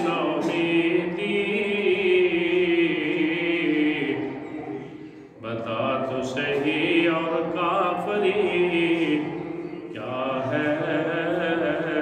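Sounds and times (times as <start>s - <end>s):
man chanting into microphone: 0.0s - 4.6s, 5.4s - 12.0s.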